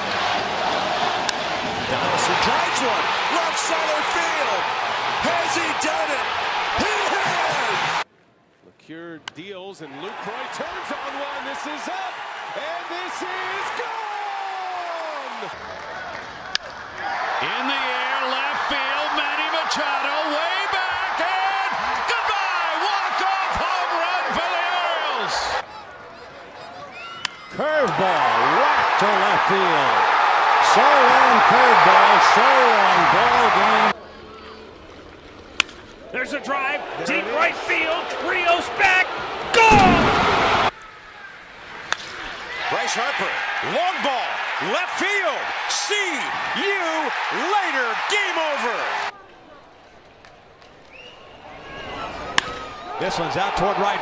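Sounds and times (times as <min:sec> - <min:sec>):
stadium crowd cheering: 0:00.0 - 0:08.1, 0:09.8 - 0:34.8, 0:36.1 - 0:54.0
shouts and whoops: 0:10.2 - 0:15.6, 0:37.1 - 0:40.8.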